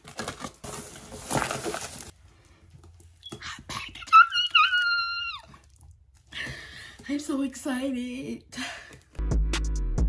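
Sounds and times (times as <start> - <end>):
woman squealing excitedly: 4.0 - 5.6.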